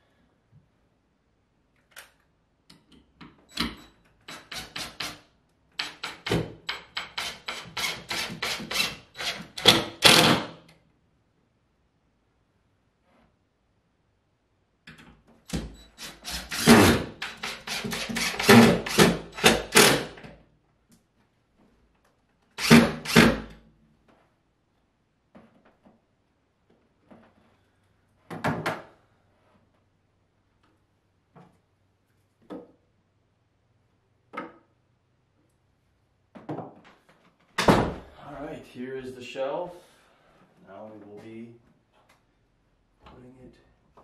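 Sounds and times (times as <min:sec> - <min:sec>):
wooden knocks and clatters: 0:36.3 - 0:38.0.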